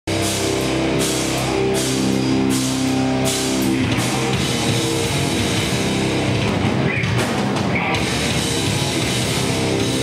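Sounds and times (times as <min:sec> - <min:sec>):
heavy rock band playing: 0:00.1 - 0:10.0.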